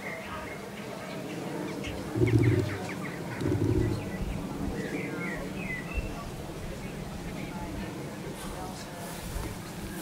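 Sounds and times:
small birds chirping: 0:00.0 - 0:06.3
low cooing notes: 0:02.1 - 0:04.3.

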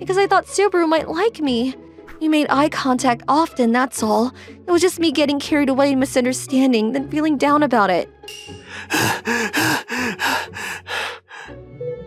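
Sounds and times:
people panting: 0:08.6 - 0:11.6.

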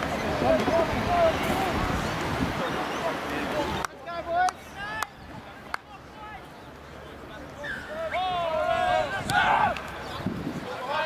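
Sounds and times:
players shouting: 0:07.5 - 0:11.0.

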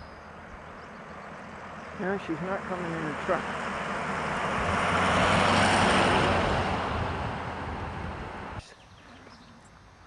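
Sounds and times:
pickup truck passing by: 0:00.2 - 0:08.6.

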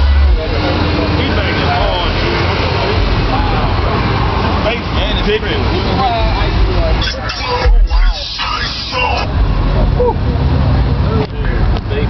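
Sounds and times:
heavy subwoofer bass: 0:00.0 - 0:10.5
crowd chatter: 0:00.0 - 0:12.0.

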